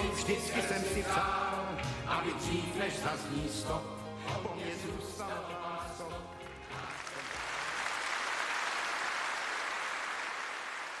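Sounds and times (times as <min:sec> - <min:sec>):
audience applauding: 0:06.7 - 0:11.0.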